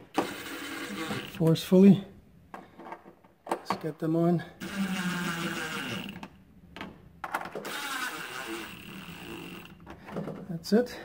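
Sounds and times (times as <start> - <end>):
cordless drill driving screw into metal: 0.0 - 1.5, 4.6 - 6.3, 7.6 - 9.8
drill clicks: 0.0 - 1.6, 4.6 - 6.4, 7.4 - 10.0.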